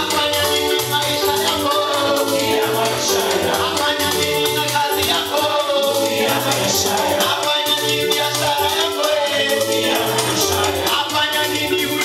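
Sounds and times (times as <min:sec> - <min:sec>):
group singing gospel music: 0:00.0 - 0:12.0.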